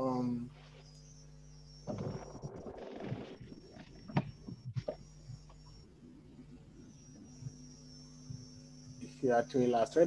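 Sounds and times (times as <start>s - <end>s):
faint high-pitched whine: 0.0s - 10.0s
low electrical hum: 0.0s - 10.0s.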